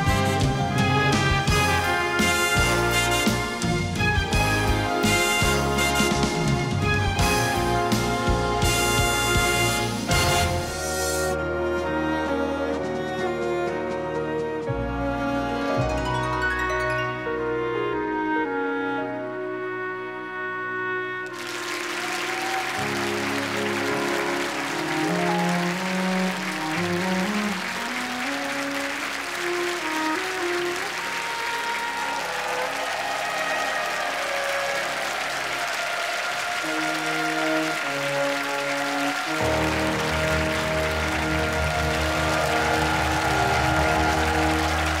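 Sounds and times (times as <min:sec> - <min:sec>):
audience applauding: 0:00.0 - 0:11.4, 0:21.3 - 0:45.0
orchestra playing: 0:00.0 - 0:45.0.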